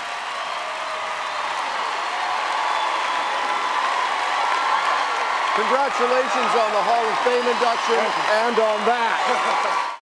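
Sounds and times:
audience applauding and cheering: 0.0 - 10.0.

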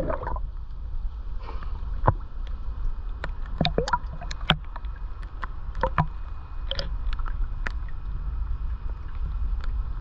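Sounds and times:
water sloshing and slapping: 0.0 - 0.4, 3.2 - 4.9.

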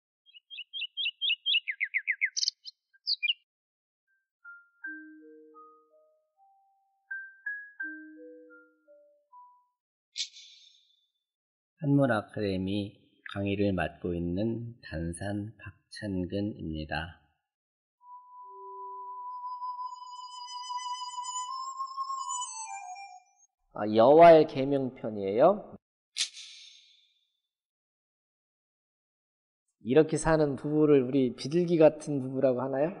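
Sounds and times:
small bird singing: 0.1 - 3.5.

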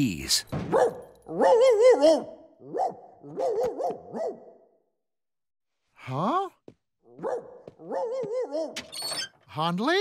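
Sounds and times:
cartoon dog barking: 0.7 - 4.6, 7.1 - 8.8
cartoon dog howling: 1.3 - 2.4.

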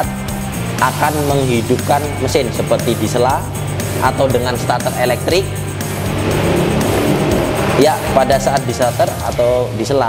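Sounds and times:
background music: 0.0 - 10.0
rushing transition sound effect: 1.6 - 9.3.

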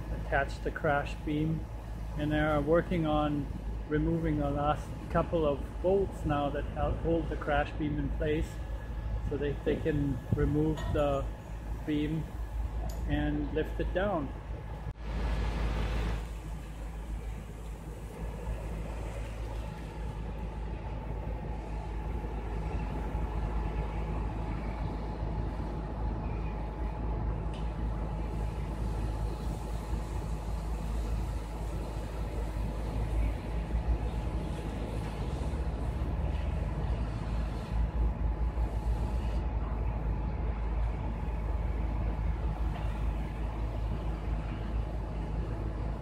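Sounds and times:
diesel engine running: 0.0 - 46.0.

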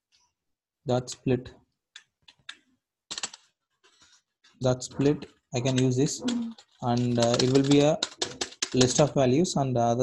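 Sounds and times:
typing on computer keyboard: 2.2 - 3.5, 5.6 - 9.1.

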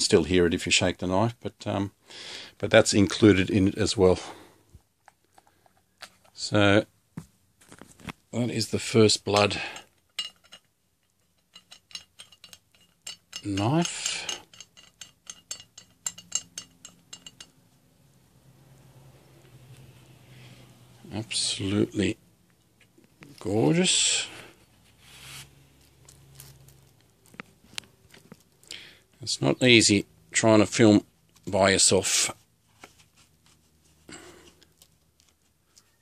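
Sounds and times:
sheath rustle: 24.8 - 28.6.

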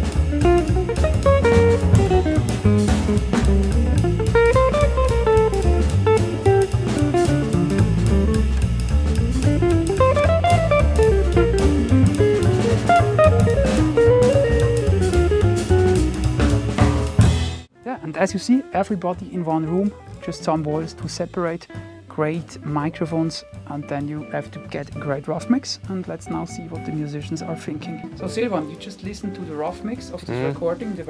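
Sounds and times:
drum kit with ride cymbal: 0.0 - 17.7
electric guitar melody: 0.0 - 30.8
walking upright bass: 0.0 - 31.0.

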